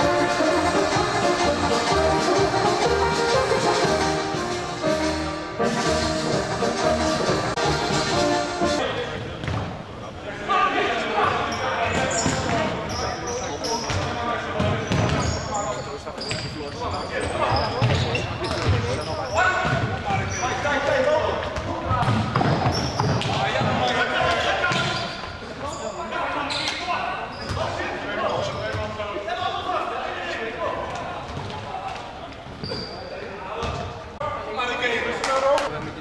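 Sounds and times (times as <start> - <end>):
ball kicked and bouncing: 9.4 - 9.7, 21.4 - 23.8.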